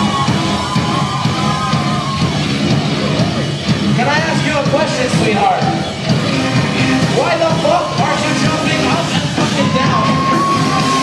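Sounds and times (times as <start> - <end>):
loud live rock band: 0.0 - 11.0.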